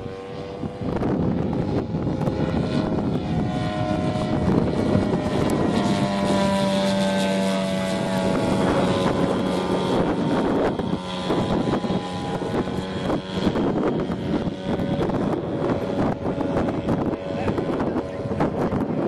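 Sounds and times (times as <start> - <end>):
model airplane engine droning: 0.0 - 19.0.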